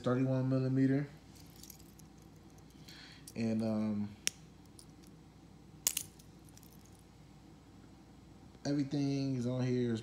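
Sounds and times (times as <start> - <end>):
watch bracelet links clinking: 1.3 - 3.4, 4.6 - 5.2, 5.9 - 7.0.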